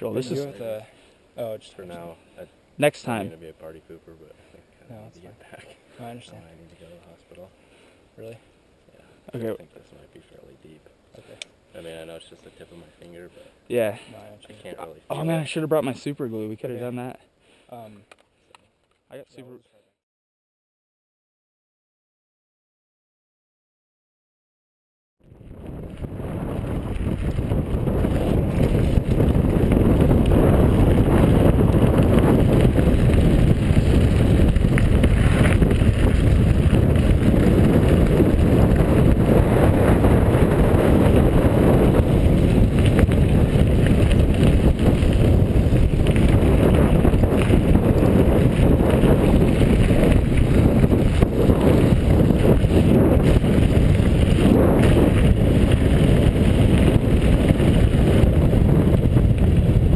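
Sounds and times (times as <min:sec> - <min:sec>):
wind rush on microphone: 0:25.2 - 0:59.9
bike rattling on bumpy surface: 0:25.4 - 0:59.9.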